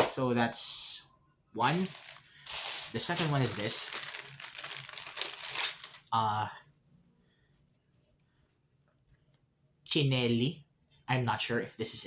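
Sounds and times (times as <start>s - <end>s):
packaging crinkling: 1.6s - 6.1s.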